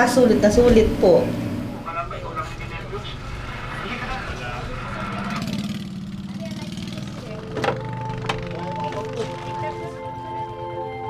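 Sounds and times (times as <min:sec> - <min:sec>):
boat engine idling: 0:00.0 - 0:11.0.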